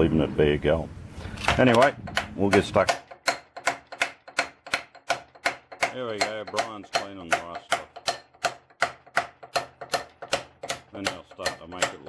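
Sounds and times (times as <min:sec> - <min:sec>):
hammer striking chisel on metal: 0:01.4 - 0:12.0.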